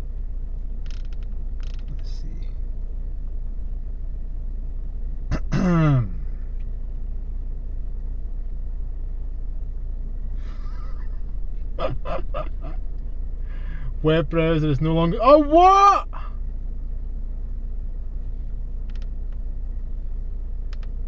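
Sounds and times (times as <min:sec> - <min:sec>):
low rumble in car cabin: 0:00.0 - 0:21.0
man groaning: 0:05.4 - 0:06.2.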